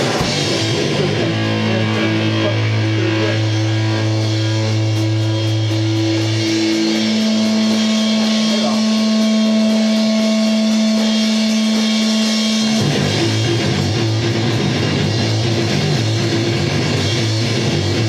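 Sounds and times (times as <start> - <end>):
electric guitar droning notes: 0.0 - 18.0
live rock band playing: 0.0 - 18.0.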